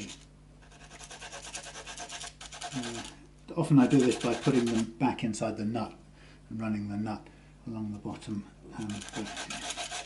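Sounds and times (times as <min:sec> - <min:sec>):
screws rubbed on abrasive paper: 0:00.0 - 0:03.2, 0:03.8 - 0:04.9, 0:08.8 - 0:10.0.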